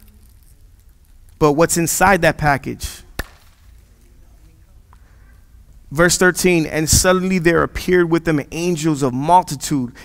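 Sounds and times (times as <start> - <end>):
sharp knock: 3.2 - 3.4.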